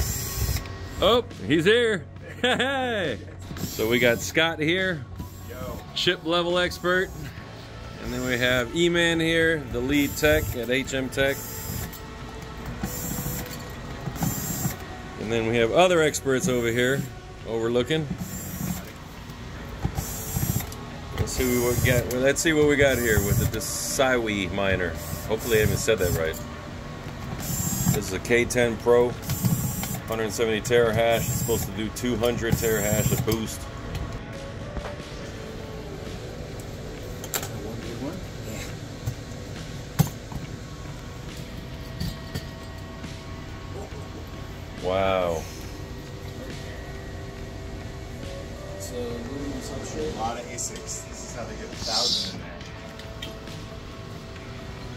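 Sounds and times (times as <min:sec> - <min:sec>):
cordless drill whirring: 0:00.0 - 0:01.0, 0:14.2 - 0:14.8, 0:18.2 - 0:18.9, 0:29.2 - 0:30.1.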